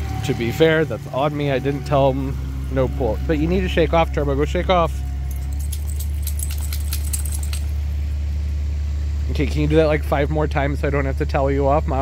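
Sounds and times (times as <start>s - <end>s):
steady low hum: 0.0s - 12.0s
collar tags jingling: 5.2s - 7.8s
dog shaking water off coat: 5.3s - 7.8s.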